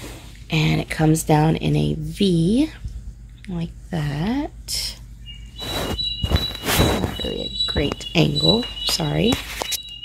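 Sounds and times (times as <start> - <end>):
fabric rustling: 5.6 - 7.2.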